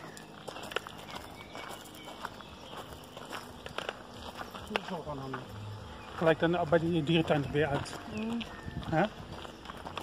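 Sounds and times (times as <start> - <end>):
footsteps on gravel: 0.0 - 10.0
outdoor background hiss: 0.0 - 10.0.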